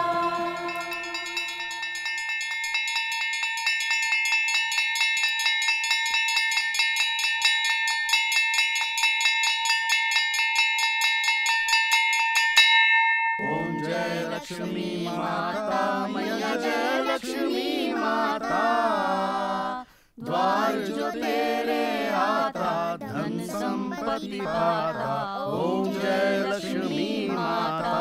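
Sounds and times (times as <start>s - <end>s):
person singing a prayer: 0.0s - 1.9s, 13.4s - 28.0s
hand bell rung rapidly: 0.0s - 14.4s.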